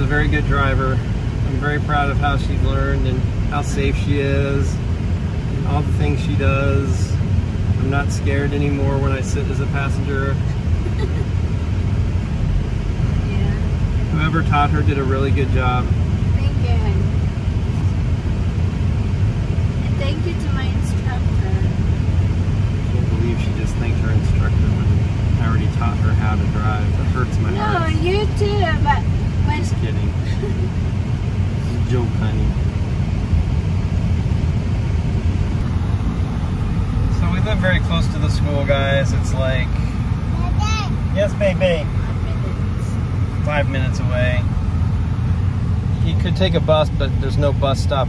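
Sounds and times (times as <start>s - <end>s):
car cabin road and engine noise: 0.0s - 48.0s
voices talking: 22.9s - 30.9s, 31.5s - 32.7s, 36.7s - 44.7s, 46.0s - 48.0s.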